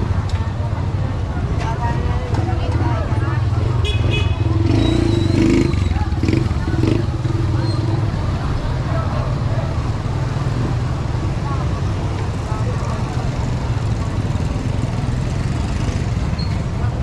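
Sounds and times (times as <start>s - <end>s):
traffic engine drone: 0.0s - 17.0s
voices of passers-by: 0.0s - 17.0s.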